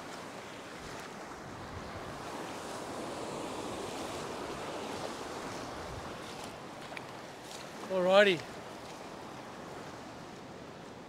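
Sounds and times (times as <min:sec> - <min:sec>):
surf waves breaking on sand: 0:00.0 - 0:11.0.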